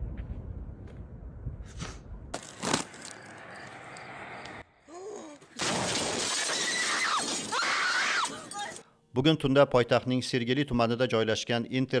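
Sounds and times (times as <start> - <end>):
glass shattering: 5.6 - 8.8
high-pitched cries: 6.4 - 8.8.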